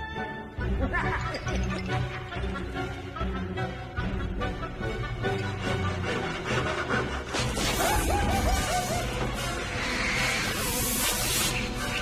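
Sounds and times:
film score music: 0.0 - 12.0
hissing spray: 9.8 - 12.0.

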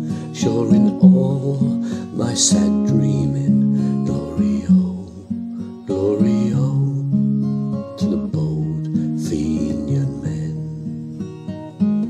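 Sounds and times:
acoustic guitar accompaniment: 0.0 - 12.0.

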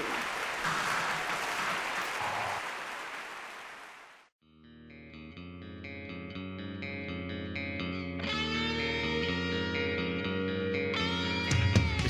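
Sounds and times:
audience applauding: 0.0 - 4.3.

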